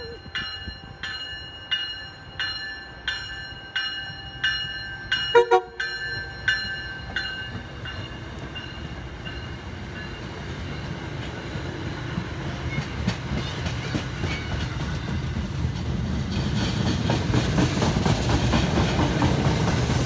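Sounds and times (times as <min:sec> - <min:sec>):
train coaches rolling past: 0:00.0 - 0:20.0
train horn blast: 0:05.3 - 0:05.8
wheels clicking over rail joints: 0:06.0 - 0:20.0.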